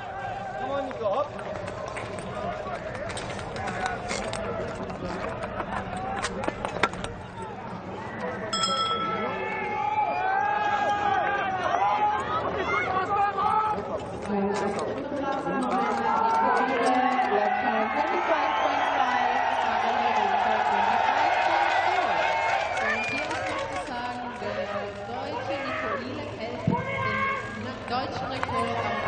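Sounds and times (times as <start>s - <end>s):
spectators shouting and cheering: 0.0s - 29.0s
bell ringing: 8.5s - 9.7s.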